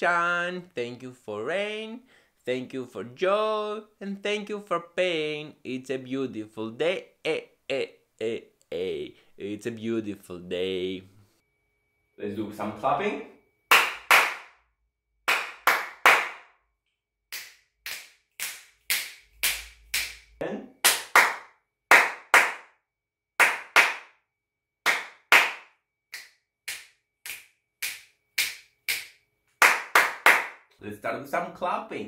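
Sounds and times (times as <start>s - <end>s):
man clapping hands: 13.7s - 14.6s, 15.3s - 16.5s, 17.3s - 22.8s, 23.4s - 24.2s, 24.8s - 30.7s.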